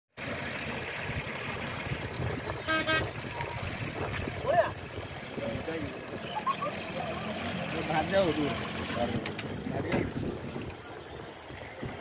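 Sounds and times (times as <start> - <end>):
floodwater rushing: 0.2 - 12.0
short horn beeps: 2.6 - 3.6.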